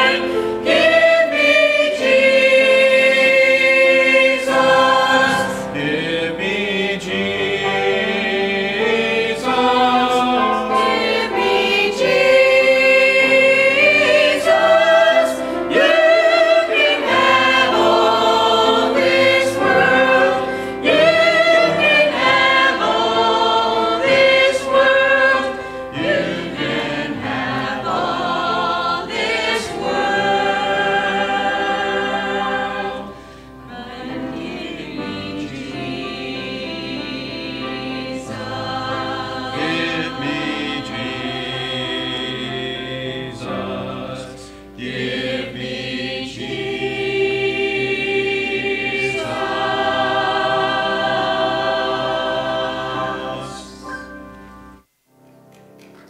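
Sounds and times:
choir singing a hymn: 0.0s - 54.2s.

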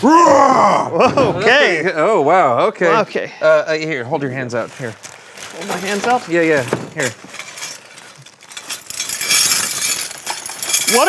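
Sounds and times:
metal hardware clinking and jangling: 6.6s - 11.0s.

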